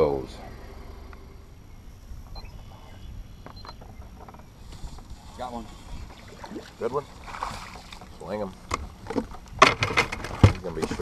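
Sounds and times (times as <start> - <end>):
steady low rumble: 0.0 - 9.6
faint high chirps: 1.1 - 3.8.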